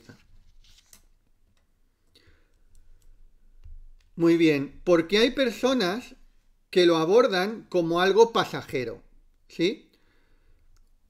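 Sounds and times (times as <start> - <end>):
faint clicks: 10.6 - 11.0.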